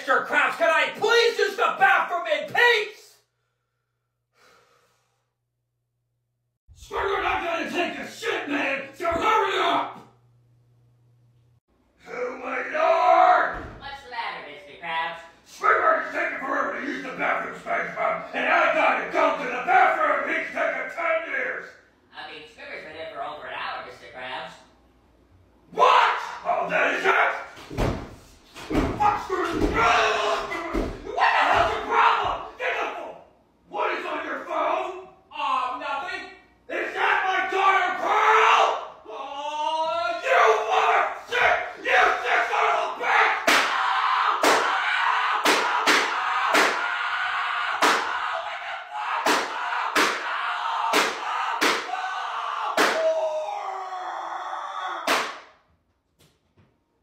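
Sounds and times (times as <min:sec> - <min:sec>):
cartoon voices shouting: 0:25.7 - 0:27.5, 0:28.8 - 0:33.2, 0:36.0 - 0:55.3.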